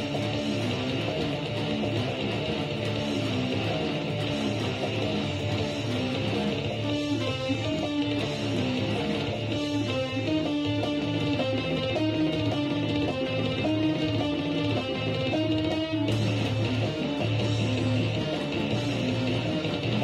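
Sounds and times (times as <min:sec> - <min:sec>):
clean electric guitar melody: 0:00.0 - 0:20.0.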